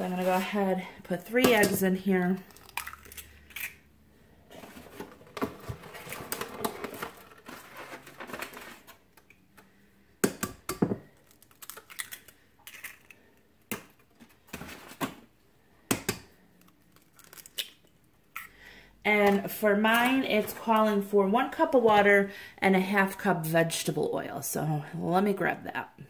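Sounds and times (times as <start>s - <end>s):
eggshell crackling apart: 11.1s - 13.2s, 16.7s - 17.9s.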